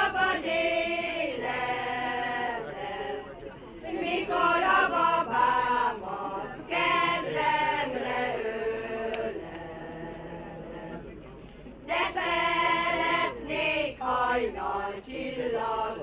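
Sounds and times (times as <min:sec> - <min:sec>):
mixed choir singing unaccompanied: 0:00.0 - 0:16.0.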